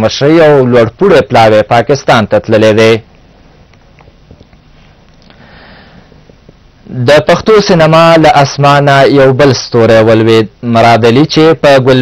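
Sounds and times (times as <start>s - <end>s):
newsreader speaking: 0.0s - 3.1s, 6.8s - 12.0s
studio background noise: 0.0s - 12.0s.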